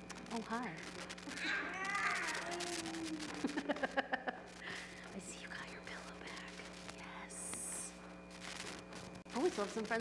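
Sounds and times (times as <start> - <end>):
steady low hum: 0.0 - 10.0
faint whispering: 4.8 - 7.9.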